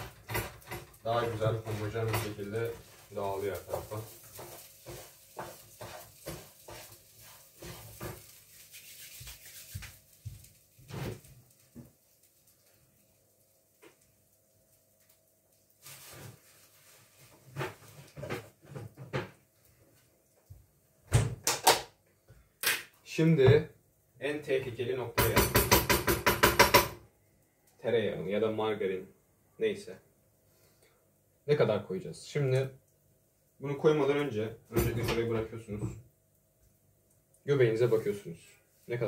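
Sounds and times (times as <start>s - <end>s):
metal spoon scraping a frying pan: 3.6s - 8.4s.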